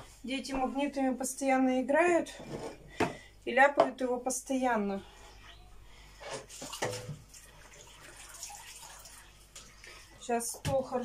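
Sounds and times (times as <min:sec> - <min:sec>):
faint water sounds: 0:04.6 - 0:11.0.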